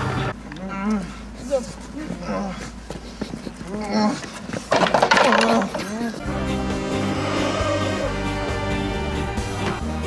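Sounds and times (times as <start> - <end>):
man groaning: 5.3 - 8.5.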